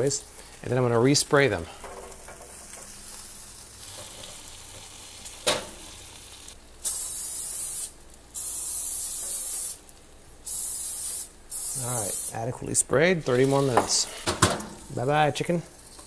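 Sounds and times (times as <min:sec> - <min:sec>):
aerosol spray can hissing: 0:06.8 - 0:12.4.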